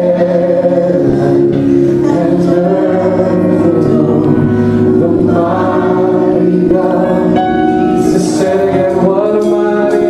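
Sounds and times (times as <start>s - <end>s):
gospel singing: 0.0s - 10.0s
sustained keyboard chord: 0.0s - 10.0s.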